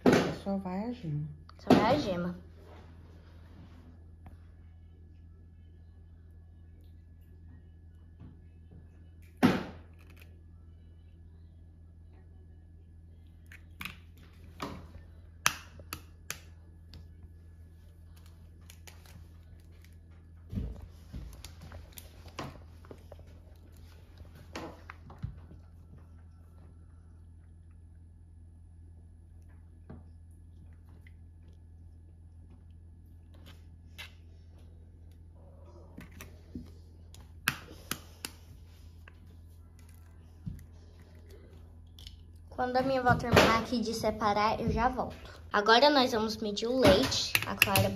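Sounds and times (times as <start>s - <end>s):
steady low hum: 0.0s - 47.9s.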